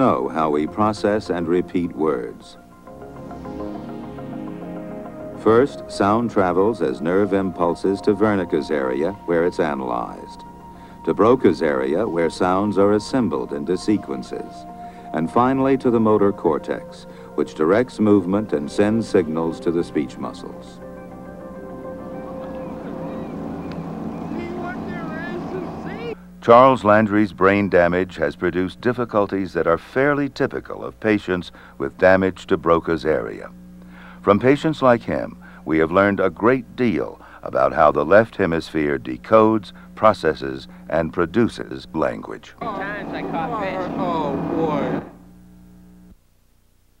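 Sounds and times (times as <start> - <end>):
people talking: 0.0 - 2.6, 5.4 - 10.4, 11.1 - 20.8, 22.6 - 23.6, 24.2 - 33.5, 34.2 - 45.2
steady low hum: 0.0 - 46.9
motorboat engine: 21.2 - 26.2, 42.6 - 45.3
person speaking: 24.2 - 26.2, 42.6 - 45.2.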